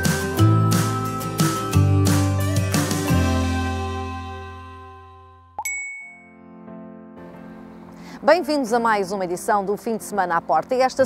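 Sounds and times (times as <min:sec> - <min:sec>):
plucked chord: 0:00.2 - 0:07.8
bright chime ding: 0:05.6 - 0:06.5.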